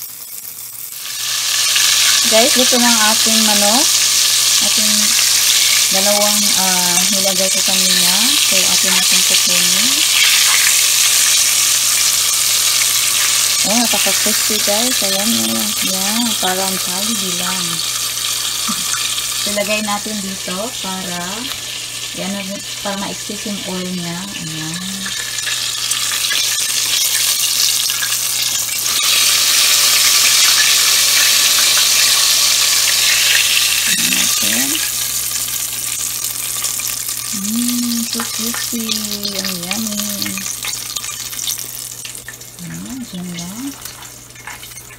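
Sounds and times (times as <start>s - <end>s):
chicken deep-frying in oil sizzle: 0.0s - 44.9s
person humming: 37.3s - 38.2s.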